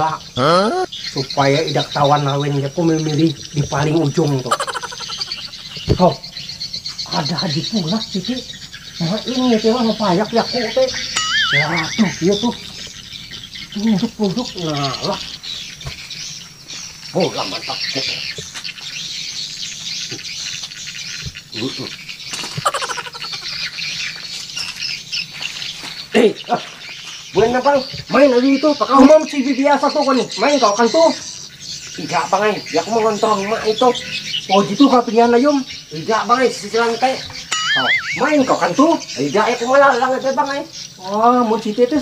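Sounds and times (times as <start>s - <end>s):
high rapid chirping call: 0.0s - 42.0s.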